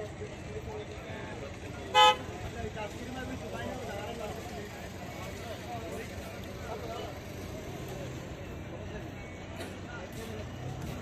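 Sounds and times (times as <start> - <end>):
murmur of voices: 0.0 - 11.0
vehicle horn toot: 1.9 - 2.2.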